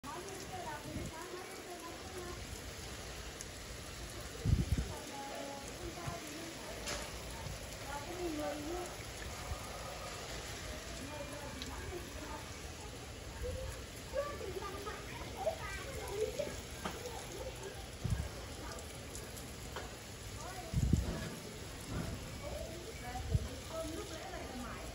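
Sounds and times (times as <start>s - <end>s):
water pattering onto leaves and soil: 0.0s - 24.9s.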